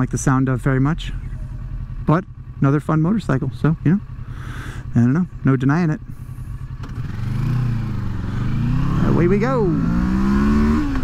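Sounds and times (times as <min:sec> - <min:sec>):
motorcycle engine idling and revving: 0:00.0 - 0:11.0.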